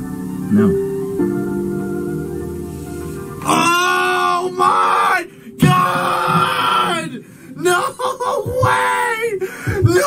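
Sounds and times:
background music: 0.0s - 10.0s
people yelling and screaming: 3.4s - 9.4s.

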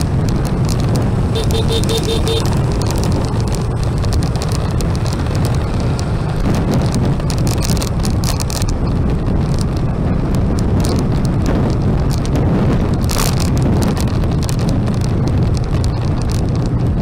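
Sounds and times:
motorbike engine and road rumble: 0.0s - 17.0s
wind on microphone: 0.0s - 17.0s.

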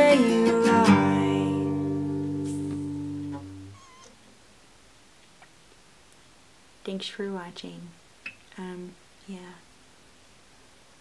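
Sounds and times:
acoustic guitar chord ringing: 0.0s - 3.8s
faint wavering squeak: 3.5s - 4.1s.

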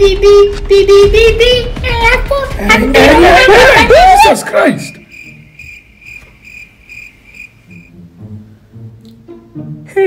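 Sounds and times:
crickets chirping: 4.8s - 8.0s.

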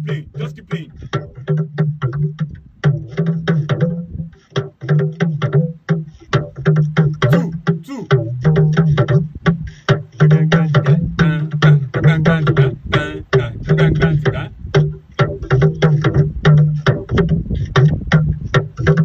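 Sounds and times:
talking drums struck with sticks: 0.0s - 12.6s.

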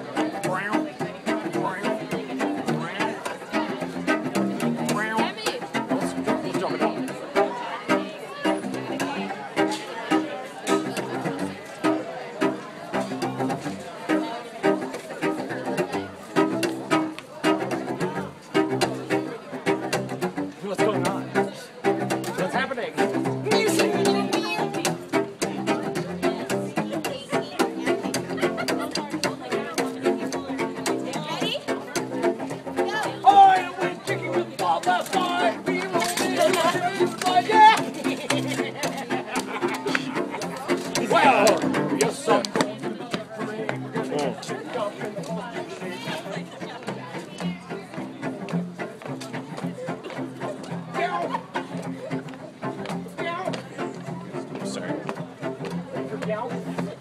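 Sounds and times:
cello bowed rhythmic figure: 0.0s - 57.0s.

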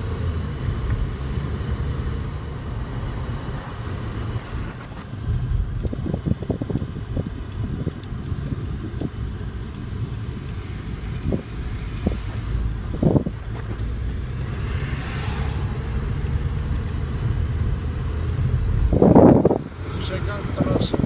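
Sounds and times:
car cabin road rumble: 0.0s - 21.0s
passing traffic rush: 0.0s - 21.0s.

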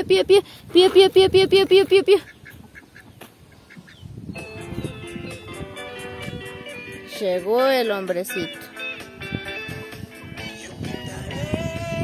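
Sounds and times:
poultry peeping: 0.8s - 8.0s
plucked string music: 4.4s - 10.8s.

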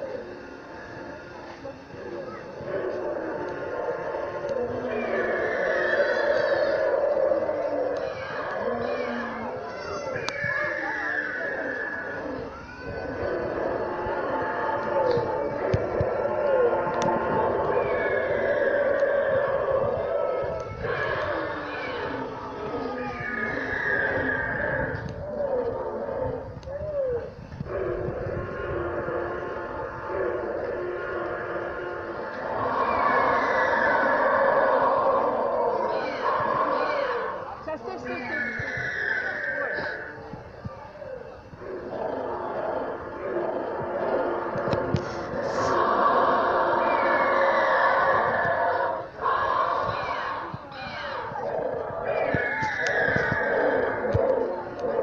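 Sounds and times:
dinosaur roars: 0.0s - 40.3s, 40.9s - 55.0s
whinny-like calls: 1.9s - 55.0s.

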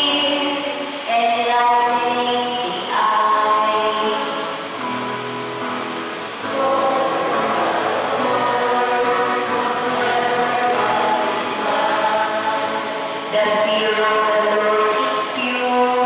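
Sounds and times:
group singing a slow hymn: 6.2s - 16.0s.

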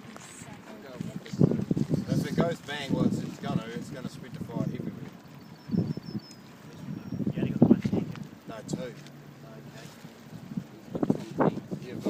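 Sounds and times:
light wind noise: 0.0s - 12.0s.

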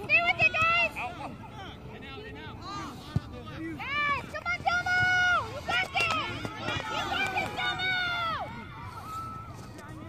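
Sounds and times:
people shouting: 4.8s - 9.3s.

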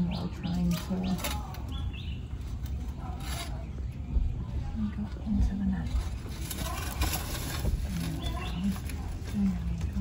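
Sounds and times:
rope net scraping over dirt: 5.8s - 10.0s.

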